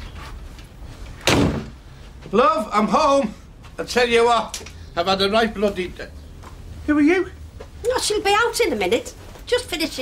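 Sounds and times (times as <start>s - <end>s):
front door banging shut: 1.2s - 1.8s.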